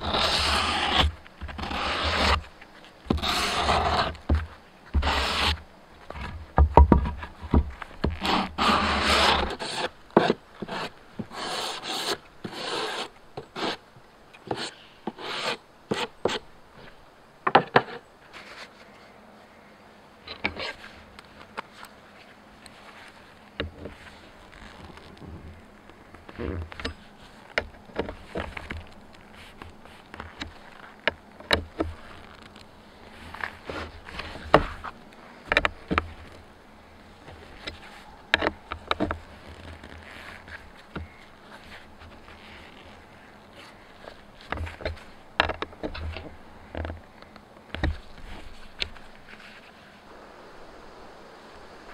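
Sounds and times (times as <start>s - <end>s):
sandpaper rasping on wood: 0.0s - 2.4s, 3.2s - 4.1s, 5.0s - 5.6s, 8.2s - 13.8s, 14.5s - 16.4s.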